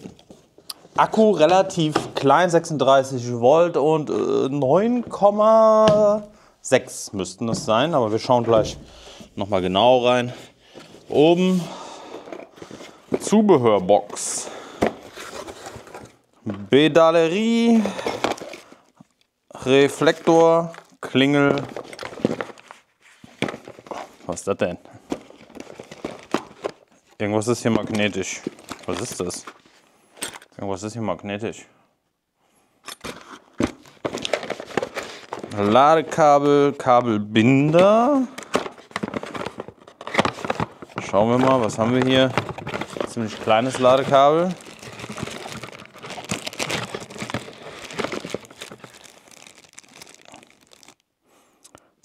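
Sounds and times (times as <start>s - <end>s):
packaging crinkling: 20.0s - 24.2s, 25.0s - 26.9s, 33.0s - 36.8s, 37.5s - 51.1s
cardboard box being opened: 41.4s - 50.8s.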